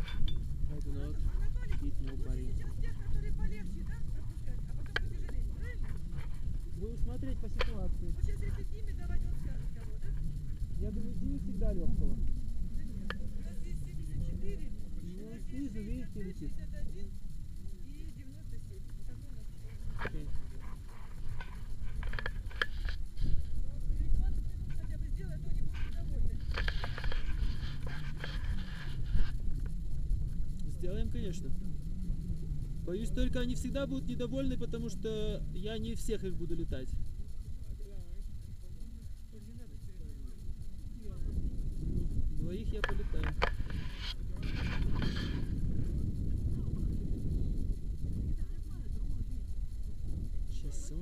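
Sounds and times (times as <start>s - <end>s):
wind buffeting microphone: 0.0s - 51.0s.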